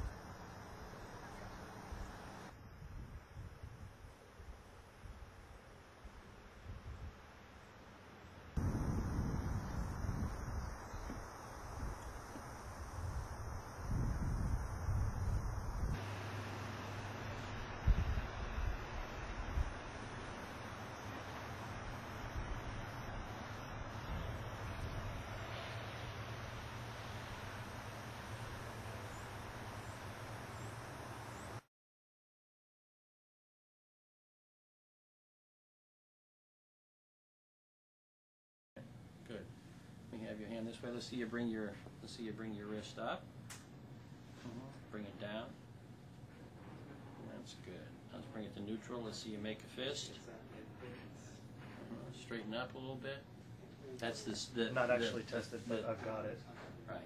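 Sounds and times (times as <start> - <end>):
wind rumbling on microphone: 1.5 - 5.3, 6.1 - 7.2, 8.6 - 16.0, 17.5 - 20.6, 21.4 - 30.4.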